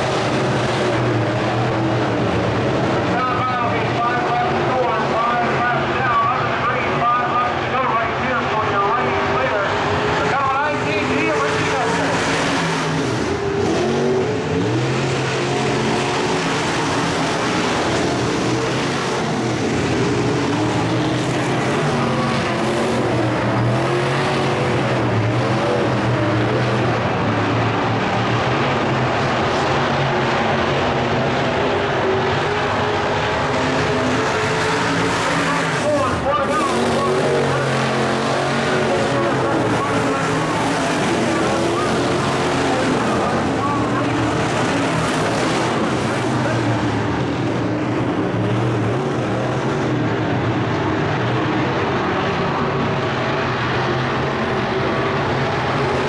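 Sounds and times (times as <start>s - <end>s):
race car engines running: 0.0s - 56.0s.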